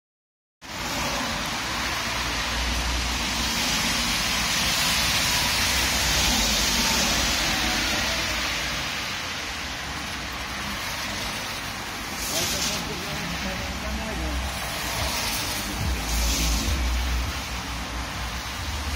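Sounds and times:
street traffic noise: 0.6s - 18.9s.

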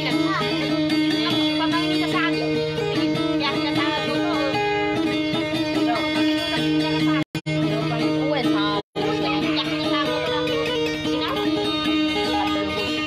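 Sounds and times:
guitar plucking: 0.0s - 13.0s.

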